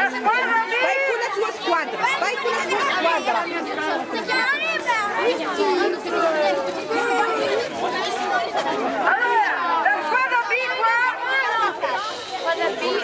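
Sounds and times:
children chattering and calling out: 0:00.0 - 0:13.0.

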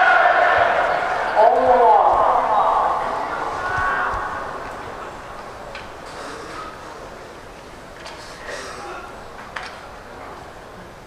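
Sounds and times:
stadium crowd hum: 0:00.0 - 0:11.0.

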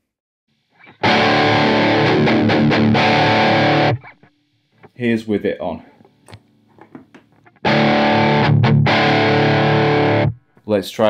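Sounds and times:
overdriven guitar chord ringing: 0:00.8 - 0:04.9, 0:07.5 - 0:10.4
electric guitar plucks: 0:00.8 - 0:05.0, 0:07.4 - 0:10.4.

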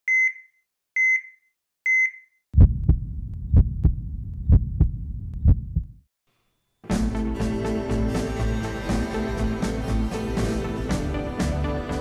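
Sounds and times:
short electronic beeps: 0:00.1 - 0:02.4
heartbeat-like double thump: 0:02.6 - 0:06.0
low rumble: 0:02.6 - 0:06.0.

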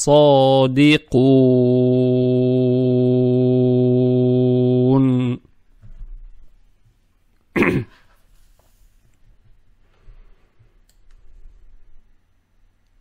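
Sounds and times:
person coughing: 0:07.5 - 0:08.1.

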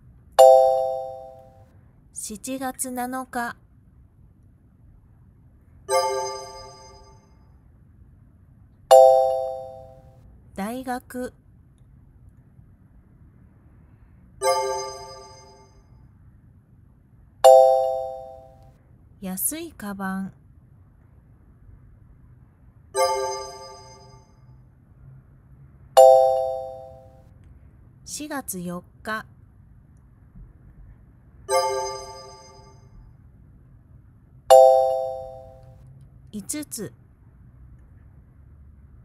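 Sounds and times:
bell-like chime: 0:00.4 - 0:01.6, 0:05.9 - 0:07.4, 0:08.9 - 0:10.0, 0:14.4 - 0:15.9, 0:17.4 - 0:18.6, 0:23.0 - 0:24.4, 0:26.0 - 0:27.2, 0:31.5 - 0:33.0, 0:34.5 - 0:35.7.

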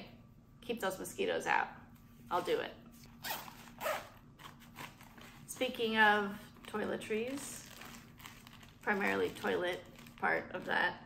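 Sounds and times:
rasping rustles of gear bag: 0:03.0 - 0:05.6.

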